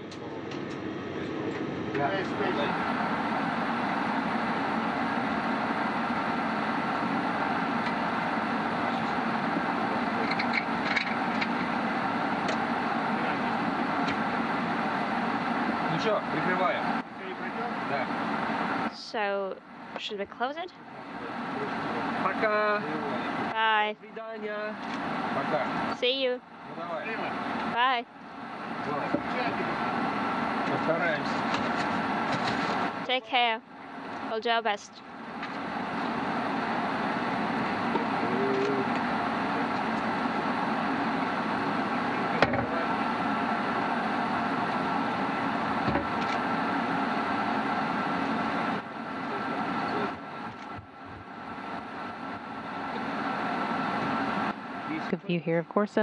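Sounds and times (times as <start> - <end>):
thin steady whine: 0.0 - 56.0
ventilation fans humming: 0.0 - 56.0
voices saying goodbye: 20.0 - 24.8, 33.0 - 35.0.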